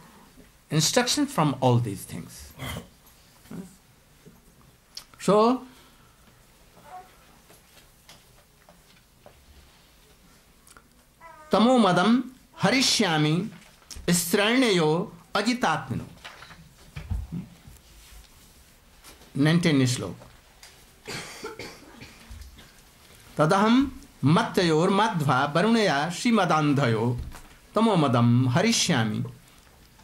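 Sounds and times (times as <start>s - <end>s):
soft throat sounds: 2.5s - 3.8s
man coughing: 21.0s - 22.8s.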